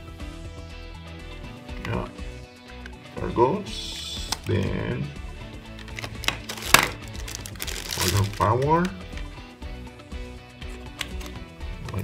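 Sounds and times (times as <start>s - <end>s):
background music: 0.0s - 12.0s
plastic cable and adapter clicks: 3.9s - 4.7s, 5.7s - 9.3s, 10.9s - 12.0s.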